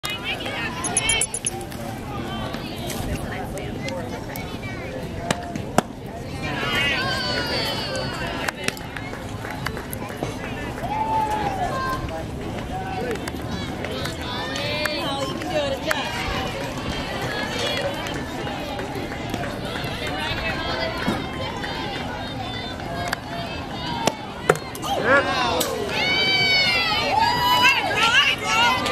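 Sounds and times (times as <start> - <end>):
sharp clicks: 0.8 - 1.6.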